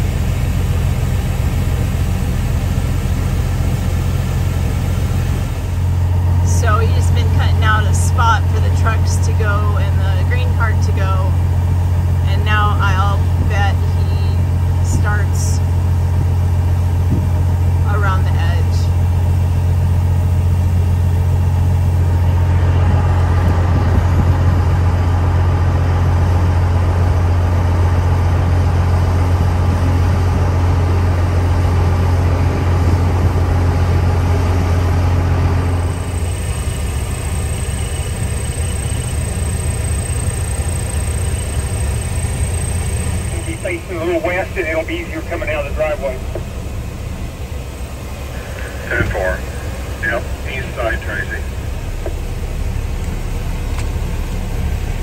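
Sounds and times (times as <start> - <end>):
truck engine drone: 0.0 - 55.0
faint high whine: 34.7 - 55.0
voice-like sounds: 48.3 - 51.6.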